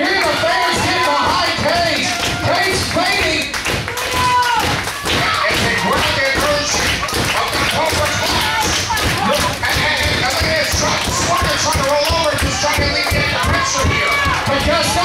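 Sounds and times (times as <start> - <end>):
crowd shouting: 0.0 - 15.0
taps and thumps: 4.6 - 15.0.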